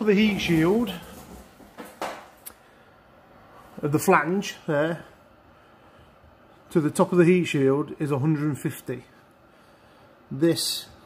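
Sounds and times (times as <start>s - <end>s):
man speaking: 0.0s - 1.2s, 3.8s - 5.2s, 6.7s - 9.2s, 10.3s - 11.0s.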